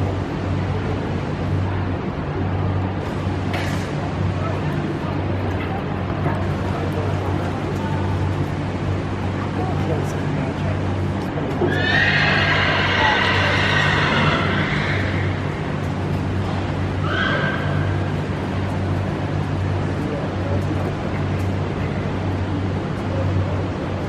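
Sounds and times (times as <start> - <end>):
steady low hum: 0.0 - 24.0
horse whinnying: 11.6 - 15.4.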